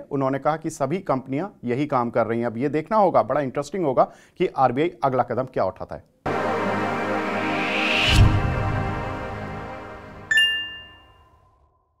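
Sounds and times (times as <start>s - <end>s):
music bed: 6.3s - 11.2s
bright electronic chime: 6.3s - 11.5s.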